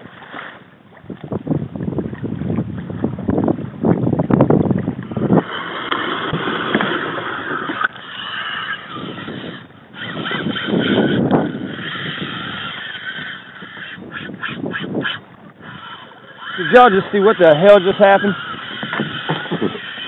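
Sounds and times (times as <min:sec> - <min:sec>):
water noise: 0:00.0 - 0:20.0
wind: 0:00.0 - 0:20.0
fishing reel drag whining: 0:05.0 - 0:20.0.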